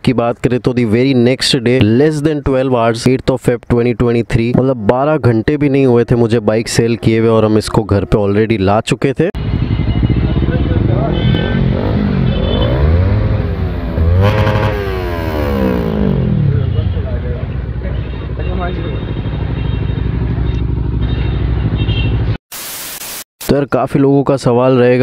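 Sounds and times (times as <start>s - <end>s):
motorcycle engine revving: 9.4s - 22.3s.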